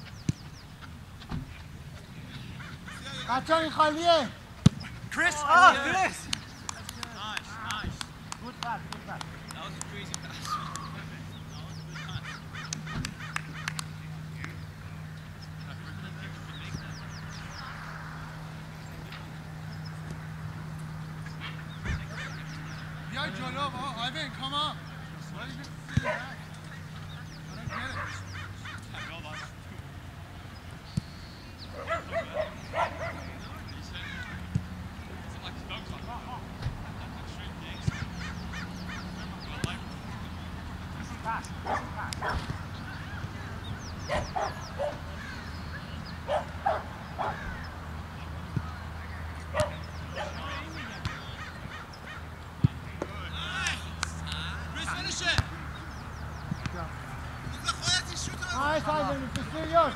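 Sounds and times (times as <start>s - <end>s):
distant players shouting: 2.3s - 59.9s.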